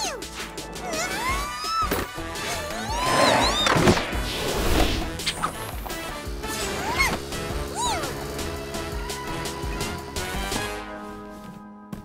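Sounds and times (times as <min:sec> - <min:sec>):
cartoon music with sliding tones: 0:00.0 - 0:10.6
skateboard rolling effect: 0:02.8 - 0:07.4.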